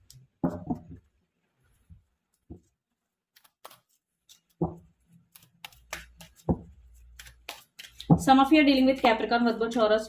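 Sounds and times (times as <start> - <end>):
cards thumping on table: 4.5 - 8.3.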